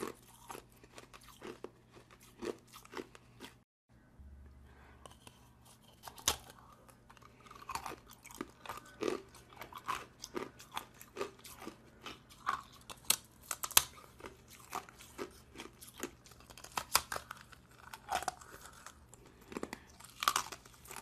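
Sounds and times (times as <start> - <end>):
ice being chewed crunching: 0.0 - 3.6, 5.1 - 21.0.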